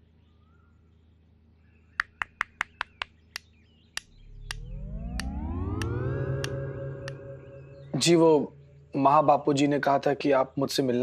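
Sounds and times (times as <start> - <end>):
sharp clicks: 2.0 - 7.2
deep synthesized tone rising: 4.0 - 10.1.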